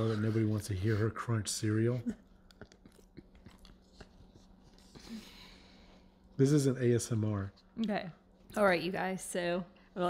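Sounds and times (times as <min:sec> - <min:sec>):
person chewing crunchy cereal: 0:02.2 - 0:05.1.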